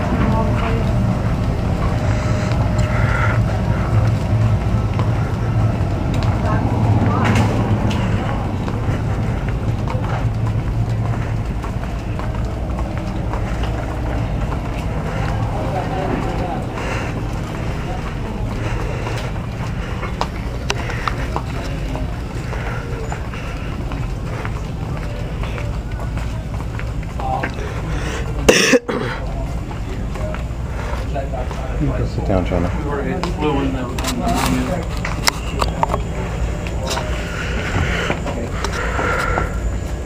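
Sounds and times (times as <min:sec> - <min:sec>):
faint indistinct voices: 0:00.0 - 0:40.0
steady low hum: 0:00.0 - 0:40.0.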